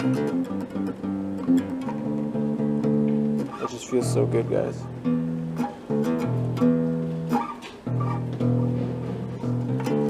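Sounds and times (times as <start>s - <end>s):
plucked bass guitar notes: 0.0s - 10.0s.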